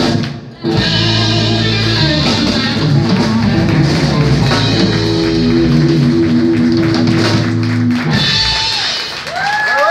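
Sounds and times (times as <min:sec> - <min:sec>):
rock band holding a final chord: 0:00.7 - 0:09.2.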